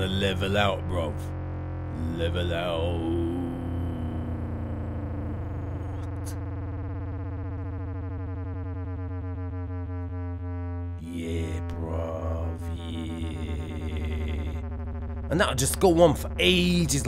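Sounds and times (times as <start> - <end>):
distorted synth bass note: 0.0 - 17.0.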